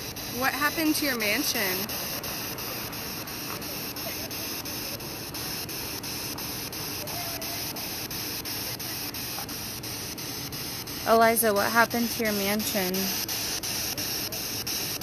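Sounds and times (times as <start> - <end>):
static hiss: 0.0 - 15.0.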